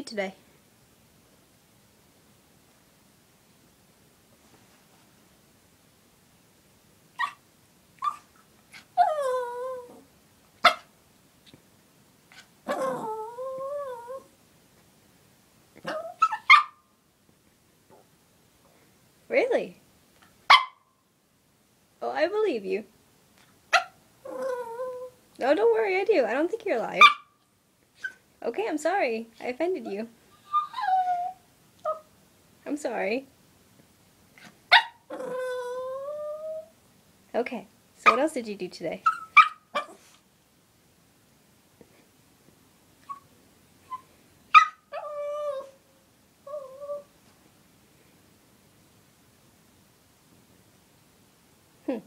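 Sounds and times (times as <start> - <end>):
dog whining: 7.2 - 7.4, 8.0 - 10.1, 12.3 - 14.3, 15.8 - 16.8, 23.8 - 25.2, 30.3 - 32.1, 34.4 - 36.8, 39.0 - 40.2, 43.0 - 45.8, 46.4 - 47.1
small dog barking: 7.2 - 7.4, 8.0 - 9.1, 10.6 - 10.9, 15.8 - 16.8, 20.5 - 20.9, 23.7 - 24.0, 27.0 - 27.4, 34.4 - 35.2, 39.0 - 40.1, 43.9 - 45.8
dog squeaking: 15.8 - 16.8, 30.4 - 32.0, 39.1 - 40.0.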